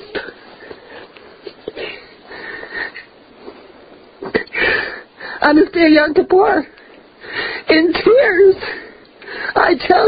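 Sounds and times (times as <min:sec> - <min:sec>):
woman speaking: 0:05.4 - 0:06.8, 0:07.6 - 0:08.9, 0:09.5 - 0:10.0.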